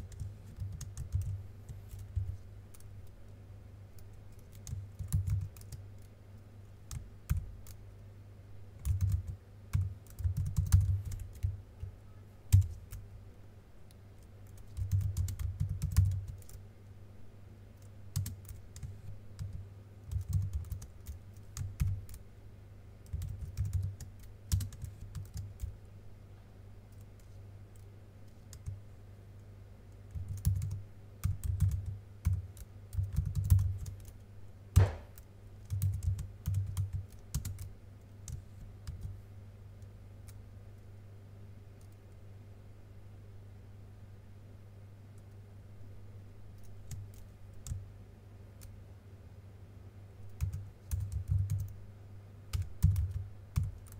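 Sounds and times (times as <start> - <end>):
keyboard typing: 0.0 - 2.9, 4.0 - 6.1, 8.8 - 11.9, 12.5 - 13.0, 14.2 - 16.6, 17.8 - 22.2, 23.0 - 25.7, 26.9 - 28.8, 30.1 - 34.2, 34.8 - 37.7, 38.3 - 39.1, 46.6 - 47.8, 50.3 - 51.8, 52.5 - 53.9
single loud knock: 34.8 - 35.2.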